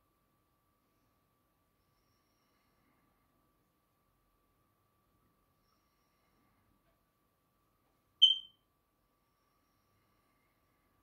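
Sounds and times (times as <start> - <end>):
high-pitched electronic beep: 8.2 - 8.5.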